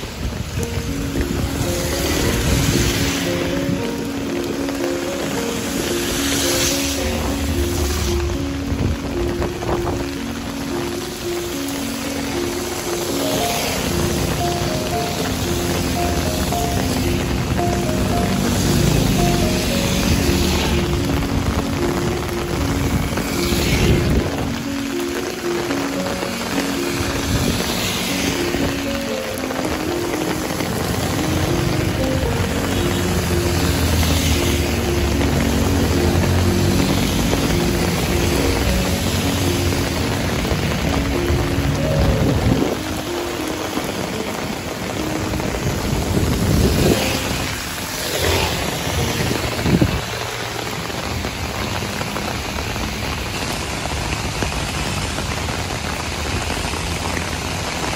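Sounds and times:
background music with held notes: 0:00.0 - 0:52.8
heavy rain on asphalt: 0:00.0 - 0:57.9
vehicles swishing on wet road: 0:00.0 - 0:57.9.

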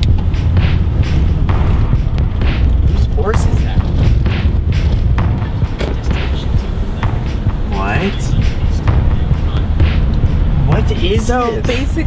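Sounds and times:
car road rumble: 0:00.0 - 0:12.0.

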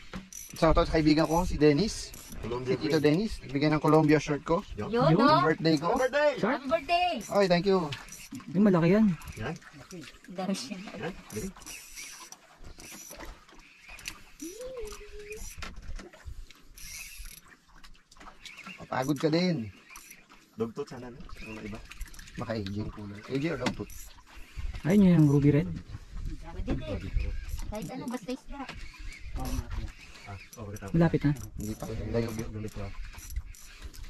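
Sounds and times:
fishing reel cranking whir: 0:00.0 - 0:04.0, 0:05.3 - 0:10.0, 0:11.2 - 0:17.6, 0:18.4 - 0:20.4, 0:21.3 - 0:22.5, 0:23.3 - 0:25.5, 0:26.8 - 0:34.0.

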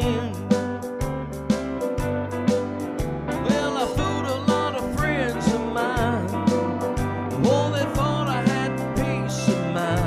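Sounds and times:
man singing gospel song: 0:00.0 - 0:00.7, 0:03.4 - 0:10.0
piano and backing band: 0:00.0 - 0:10.0.

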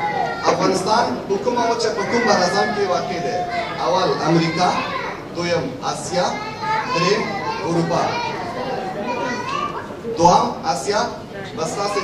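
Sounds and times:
children talking over one another: 0:00.0 - 0:12.0.

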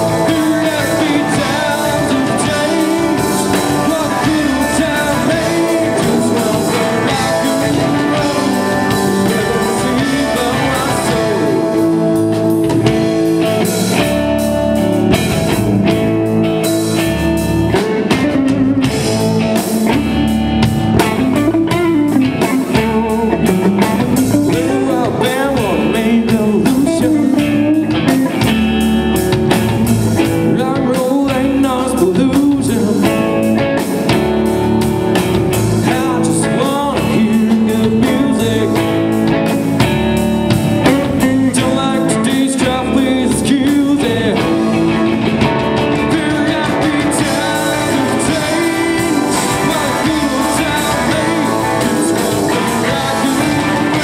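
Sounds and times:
man singing: 0:00.0 - 0:14.2, 0:17.7 - 0:20.2, 0:20.9 - 0:28.6, 0:30.2 - 0:34.5, 0:35.4 - 0:39.9, 0:40.6 - 0:54.0
distorted electric guitars: 0:00.0 - 0:54.0
drum kit: 0:00.0 - 0:54.0.

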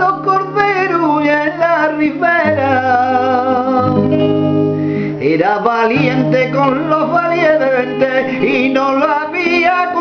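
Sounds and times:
man singing: 0:00.0 - 0:04.2, 0:04.9 - 0:10.0
nylon-string guitar: 0:00.0 - 0:10.0.

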